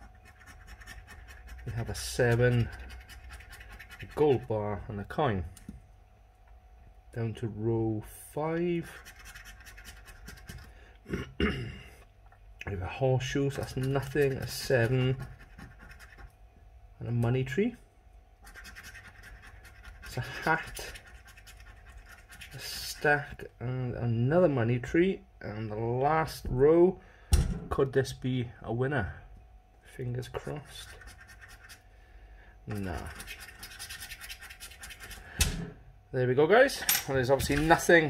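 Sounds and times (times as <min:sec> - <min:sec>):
coin scratching scratch card: 0:00.0 - 0:04.5, 0:08.8 - 0:10.7, 0:13.5 - 0:16.3, 0:18.4 - 0:22.9, 0:30.8 - 0:31.8, 0:32.7 - 0:35.3.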